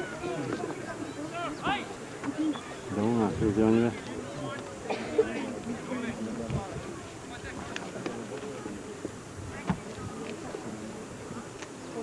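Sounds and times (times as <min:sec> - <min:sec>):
distant spectators murmuring: 0:00.0 - 0:12.0
steady hiss: 0:00.1 - 0:12.0.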